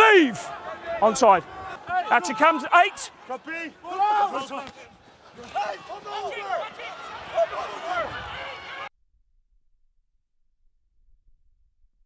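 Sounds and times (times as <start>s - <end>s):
men calling out: 0.0s - 8.8s.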